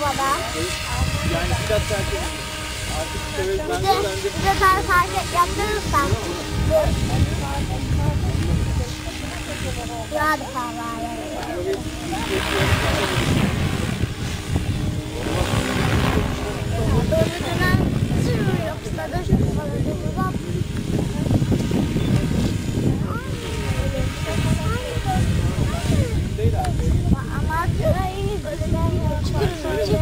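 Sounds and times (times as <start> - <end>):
helicopter rotor blades whooshing: 0.0 - 30.0
wind rumble on microphone: 0.0 - 30.0.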